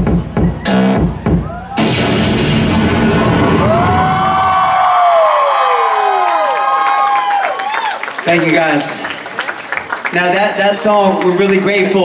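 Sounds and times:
electronic dance music: 0:00.0 - 0:04.2
crowd cheering and screaming: 0:00.6 - 0:08.2.

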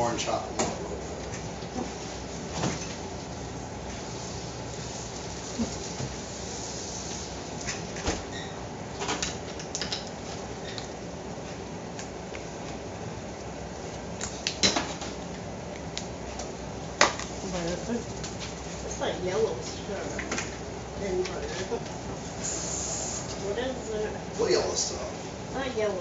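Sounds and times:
steady hiss: 0:22.2 - 0:23.4.

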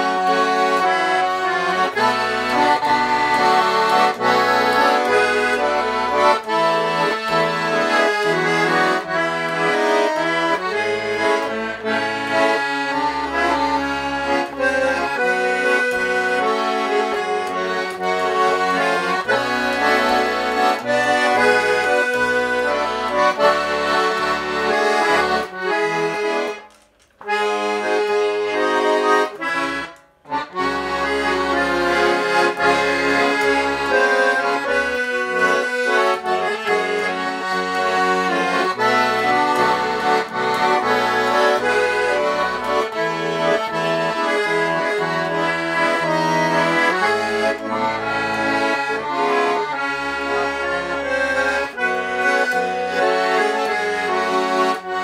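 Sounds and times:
button accordion tune: 0:00.0 - 0:55.0.

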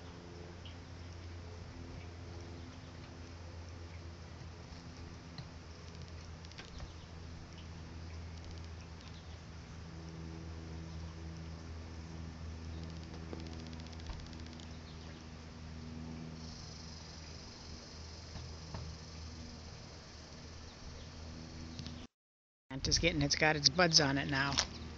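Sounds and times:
low mechanical hum: 0:00.0 - 0:22.1, 0:22.7 - 0:24.9
high insect buzz: 0:05.7 - 0:22.1.

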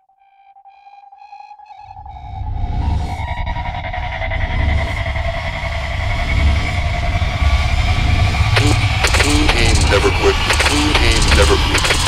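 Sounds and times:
deep steady rumble: 0:04.5 - 0:12.0
held tones: 0:08.6 - 0:12.0
voice-like sound: 0:08.6 - 0:12.0.

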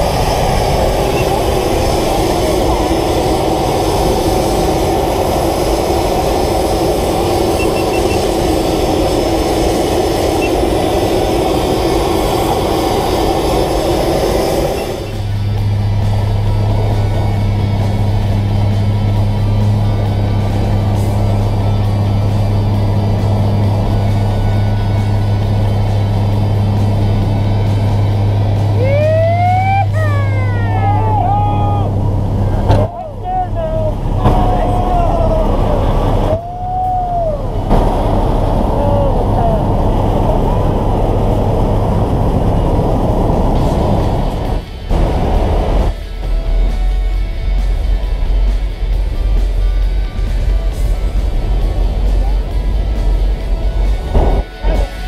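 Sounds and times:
turboprop engine roar: 0:00.0 - 0:55.0
people whooping: 0:28.7 - 0:32.0, 0:32.8 - 0:39.9.

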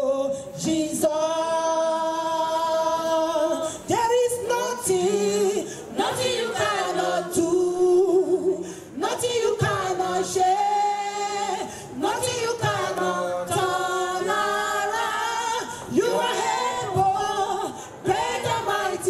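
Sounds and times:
women and choir singing a cappella: 0:00.0 - 0:19.0.

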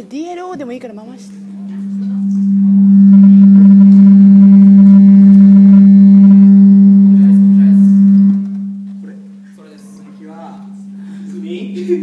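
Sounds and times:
low-pitched pa system hum: 0:00.0 - 0:12.0.

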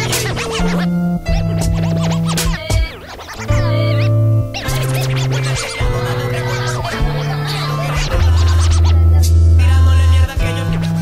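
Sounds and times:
hip-hop bass line: 0:00.0 - 0:11.0
turntable scratching: 0:00.0 - 0:11.0.

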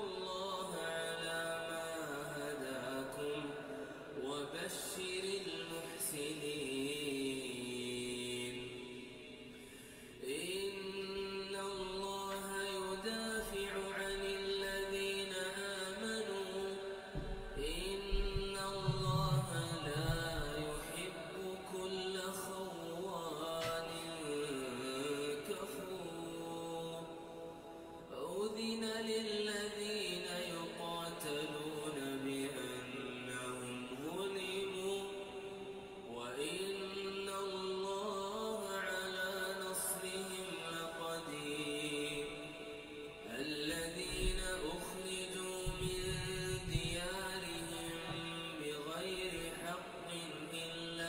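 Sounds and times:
man chanting recitation: 0:00.0 - 0:51.0.

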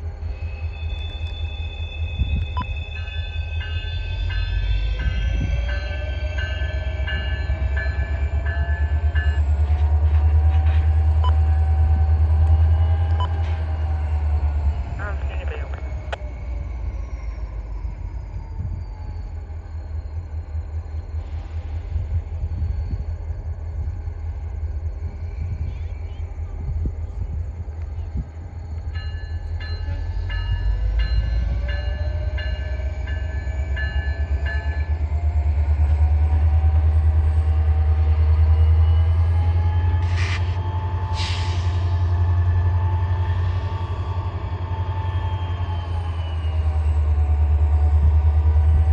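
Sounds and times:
diesel locomotive engine rumble: 0:00.0 - 0:48.9.

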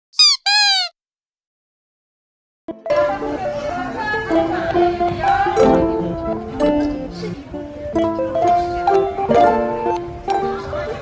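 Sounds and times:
squeaky calls: 0:00.1 - 0:00.9.

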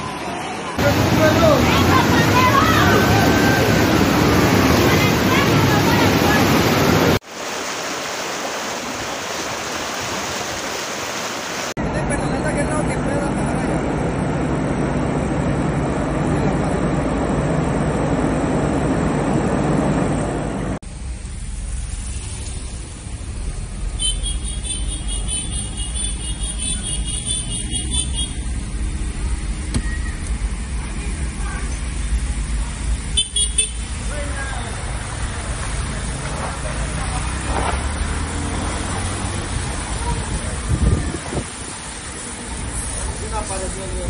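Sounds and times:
floodwater rushing: 0:00.0 - 0:11.8, 0:27.7 - 0:44.0
car engine and road noise: 0:00.0 - 0:44.0.

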